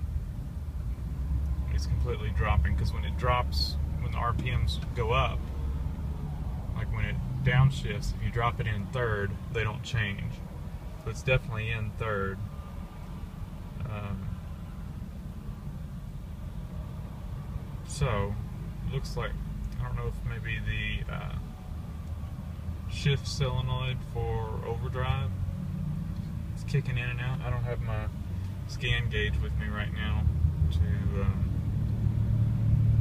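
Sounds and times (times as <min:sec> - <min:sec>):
car engine rumble: 0:00.0 - 0:33.0
road noise: 0:00.0 - 0:33.0.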